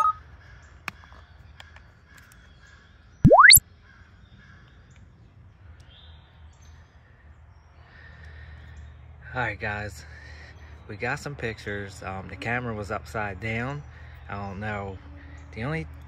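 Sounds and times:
electronic tone sweeping upward: 0:03.3 - 0:03.6
distant bird calls: 0:10.0 - 0:16.0.

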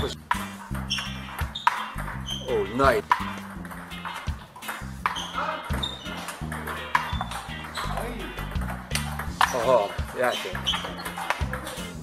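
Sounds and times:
table tennis ball hits: 0:00.0 - 0:12.0.

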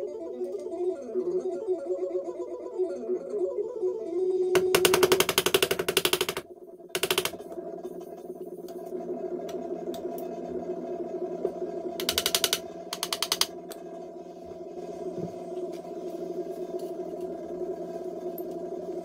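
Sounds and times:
steady background tone: 0:00.0 - 0:19.0
small hammer tapping on frets: 0:12.0 - 0:13.5.

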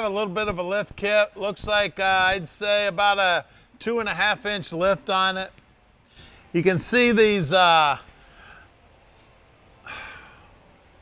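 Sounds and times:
man breathing: 0:03.5 - 0:03.8, 0:06.0 - 0:06.6, 0:08.1 - 0:08.9, 0:09.8 - 0:10.7.

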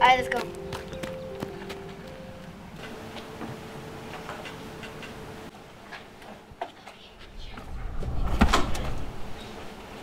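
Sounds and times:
low steady tone: 0:00.0 - 0:05.5.

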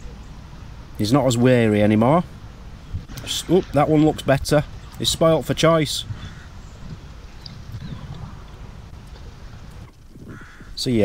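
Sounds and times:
low background rumble: 0:00.0 - 0:11.0
faint bird calls: 0:02.8 - 0:10.9.

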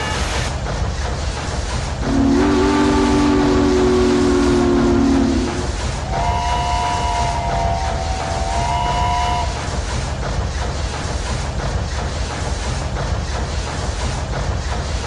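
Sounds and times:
rumble of running train: 0:00.0 - 0:15.0
low train horn blast: 0:02.0 - 0:09.6
high steam whistle: 0:02.0 - 0:09.7.

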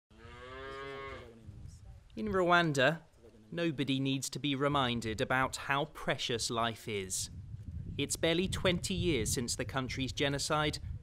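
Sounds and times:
cow mooing: 0:00.1 - 0:01.3.

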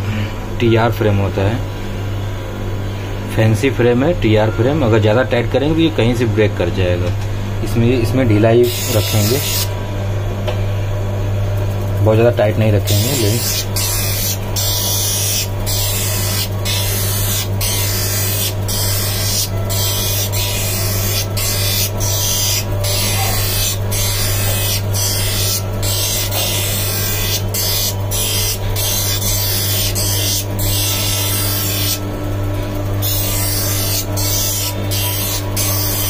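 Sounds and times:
motor hum: 0:00.0 - 0:36.0.

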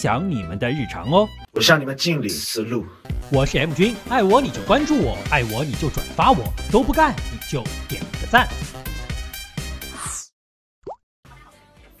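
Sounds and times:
background music: 0:00.0 - 0:10.0, 0:11.3 - 0:12.0.

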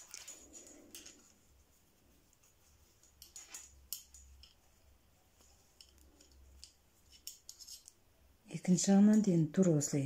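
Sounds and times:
knitting needles clicking: 0:00.0 - 0:01.4, 0:02.3 - 0:08.1.

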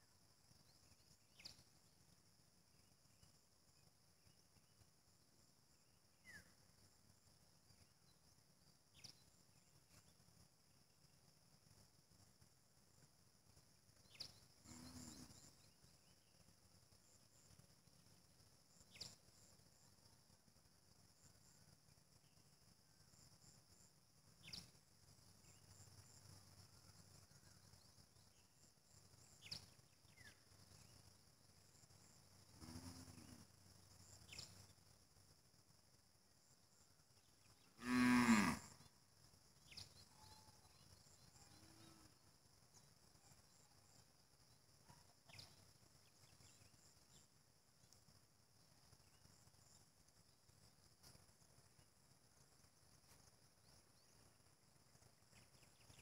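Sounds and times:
insect chirring: 0:00.0 - 0:56.0
cow mooing: 0:37.8 - 0:38.6.

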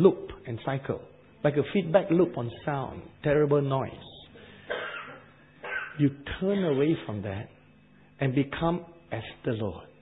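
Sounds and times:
person coughing: 0:04.6 - 0:07.1.

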